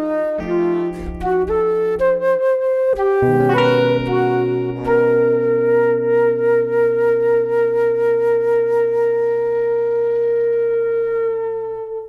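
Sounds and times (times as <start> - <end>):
flute holding a long note: 0.0 - 12.0
low accompaniment: 0.0 - 12.0.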